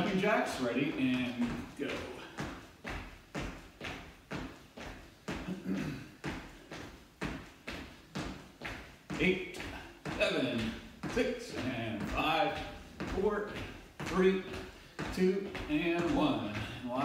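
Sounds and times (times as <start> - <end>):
feet thudding on floor: 0.9 - 17.0.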